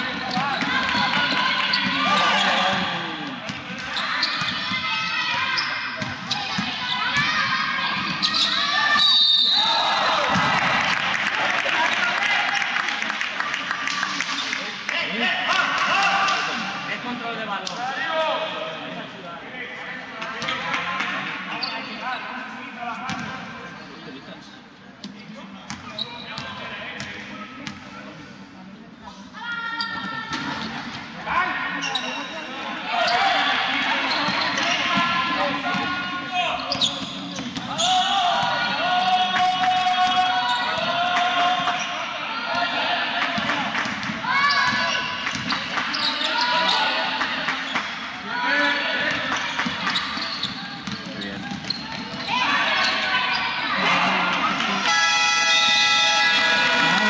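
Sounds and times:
basketball bouncing on court: 0:49.1 - 0:52.3.

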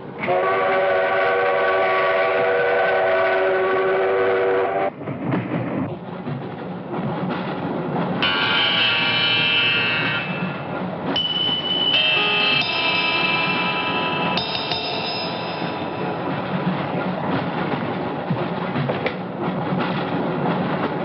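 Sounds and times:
train running on rails: 0:00.0 - 0:21.0
steam locomotive whistle: 0:00.2 - 0:04.9, 0:08.2 - 0:10.4.

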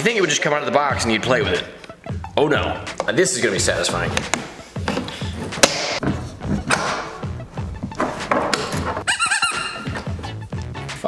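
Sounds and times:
background music: 0:00.0 - 0:11.0
plastic parts knocking: 0:04.0 - 0:09.1.

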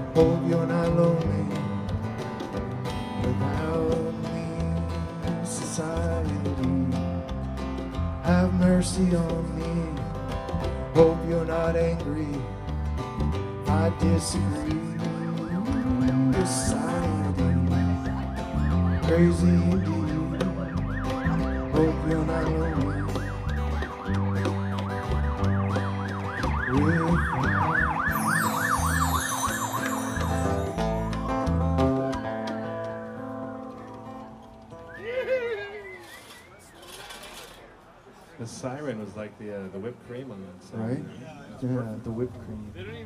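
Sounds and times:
acoustic guitar and bass: 0:00.0 - 0:35.0
emergency vehicle siren: 0:14.2 - 0:32.0.

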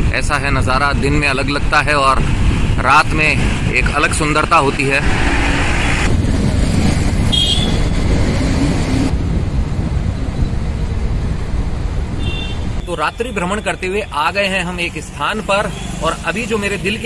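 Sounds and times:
wind noise on microphone: 0:00.0 - 0:12.9
road and engine rumble: 0:00.0 - 0:17.0
short horn beep: 0:07.3 - 0:08.0.

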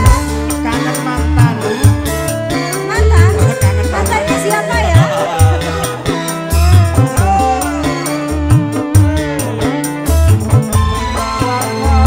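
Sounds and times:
bass: 0:00.0 - 0:12.0
drums: 0:00.0 - 0:12.0
electric guitar melody with bent notes: 0:00.0 - 0:12.0.

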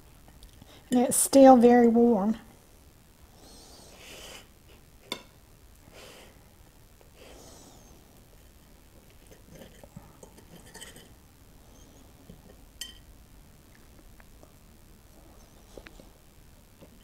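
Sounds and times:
cutlery scraping a plate: 0:09.2 - 0:11.2.

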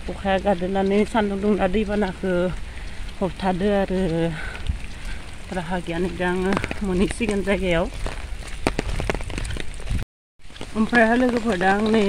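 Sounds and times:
drops ticking near microphone: 0:00.0 - 0:09.9
rain falling: 0:00.0 - 0:12.0.

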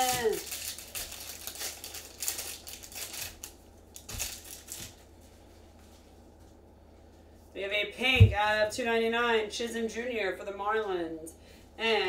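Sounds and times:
foil wrapper crinkling and tearing: 0:00.0 - 0:05.1.

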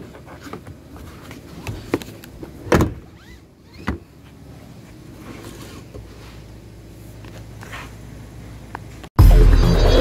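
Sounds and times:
seat belt webbing whirring: 0:01.4 - 0:04.2.

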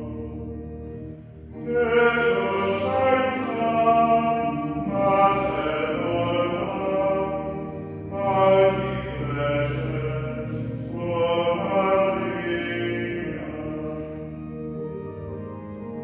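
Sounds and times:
man singing plainchant: 0:01.6 - 0:14.2.

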